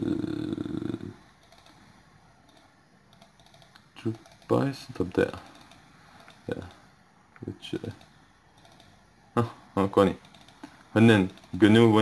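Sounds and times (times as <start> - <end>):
faint computer mouse clicks: 2.4 - 4.5, 7.4 - 9.0.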